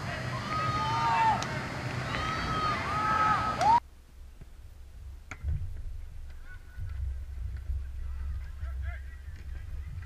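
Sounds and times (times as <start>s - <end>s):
distant shouting of players: 0.0s - 3.8s
wind rumble on microphone: 4.2s - 10.0s.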